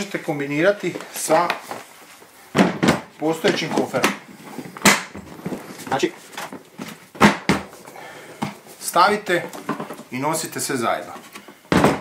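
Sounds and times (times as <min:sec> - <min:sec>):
sharp plastic knocks: 0:04.8 - 0:05.3, 0:07.1 - 0:07.7.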